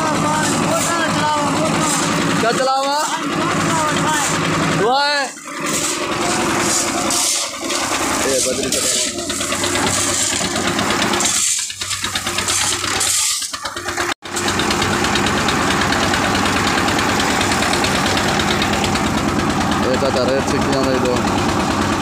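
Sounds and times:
concrete mixer engine running: 0.0s - 22.0s.

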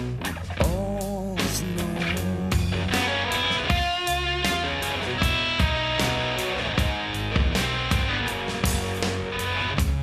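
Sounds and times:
electric guitar chords: 0.0s - 10.0s
rock band playing: 0.0s - 10.0s.

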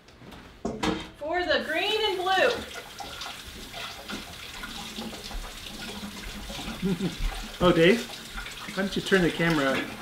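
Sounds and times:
kitchen tap running: 1.5s - 10.0s.

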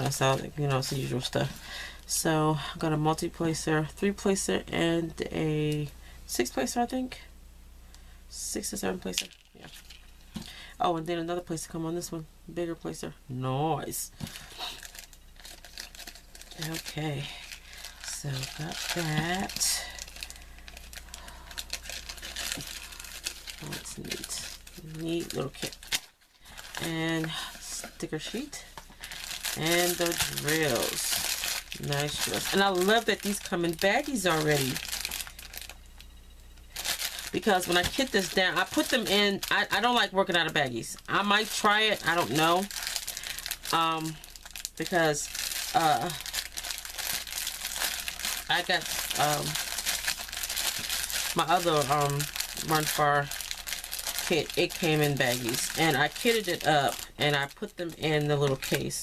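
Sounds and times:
plastic bag crinkling: 0.0s - 2.2s, 9.0s - 10.6s, 13.8s - 59.0s.

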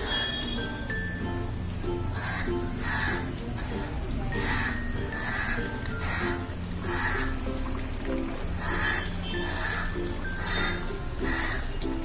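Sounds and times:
light background music: 0.0s - 12.0s
crows cawing: 2.1s - 7.4s, 8.6s - 11.8s.

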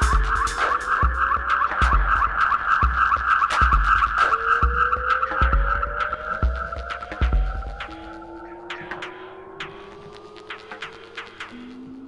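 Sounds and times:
kick drum beats: 0.0s - 10.0s
ticking hi-hats: 0.0s - 12.0s.

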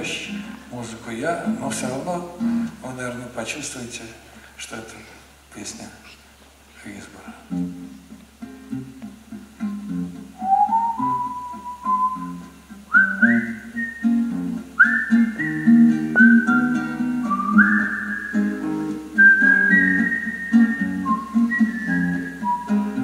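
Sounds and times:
acoustic guitar picking: 0.0s - 3.0s, 7.5s - 23.0s
whistled melody: 10.4s - 23.0s.

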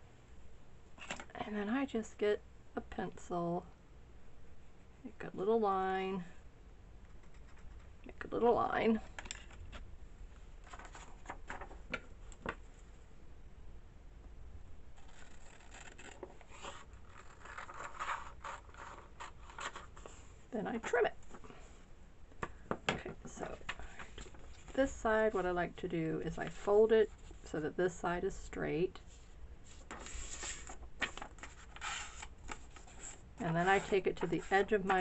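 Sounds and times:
paper rustling and crinkling: 10.6s - 12.6s, 15.0s - 20.2s, 29.1s - 35.0s
scissors cutting paper: 15.0s - 16.4s.

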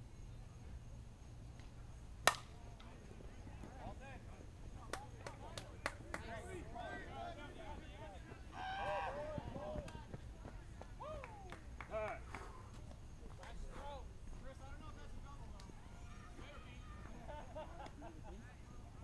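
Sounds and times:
bat hitting ball: 2.2s - 2.6s
players shouting: 5.0s - 12.3s, 14.5s - 17.6s.

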